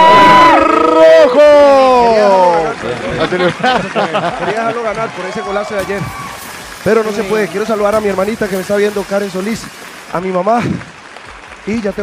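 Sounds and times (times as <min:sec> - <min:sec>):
man shouting long: 0:00.0 - 0:02.5
people talking: 0:00.5 - 0:10.9, 0:11.6 - 0:12.0.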